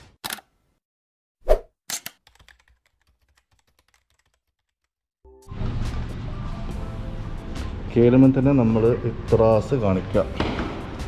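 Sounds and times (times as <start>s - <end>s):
quick high swish: 1.4s - 1.7s.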